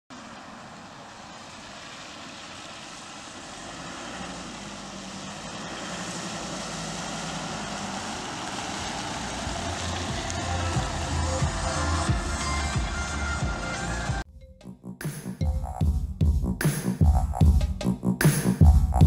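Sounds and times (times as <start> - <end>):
tyre hiss on wet road: 0.1 - 13.3
low engine note: 0.1 - 19.0.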